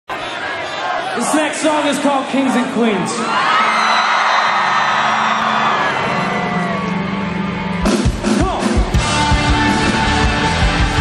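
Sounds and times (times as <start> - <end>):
crowd cheering and yelling: 0.1 - 11.0
live rock music over pa: 5.3 - 11.0.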